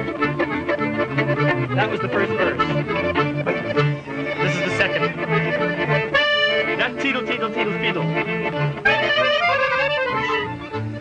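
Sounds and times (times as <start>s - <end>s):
accordion playing lively tune: 0.0s - 11.0s.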